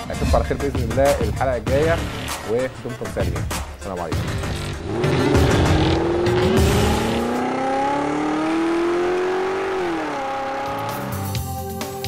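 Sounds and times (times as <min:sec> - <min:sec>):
music with a beat: 0:00.0 - 0:07.6, 0:10.8 - 0:12.0
background music: 0:00.0 - 0:12.0
car engine accelerating: 0:04.2 - 0:11.6.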